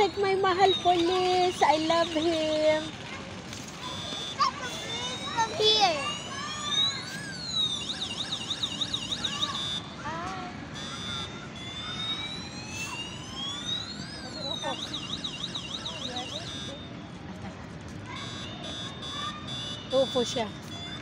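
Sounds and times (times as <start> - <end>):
electronic police siren: 0.0 - 17.2, 18.0 - 21.0.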